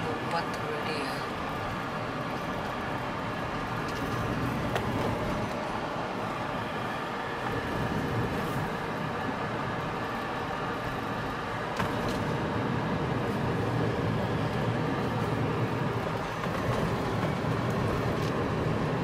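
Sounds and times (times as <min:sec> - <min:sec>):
car road and engine noise: 0:00.0 - 0:19.0.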